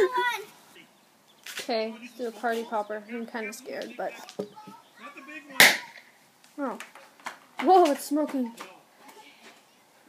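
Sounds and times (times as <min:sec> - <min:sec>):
party popper pop: 0:05.6 - 0:06.0.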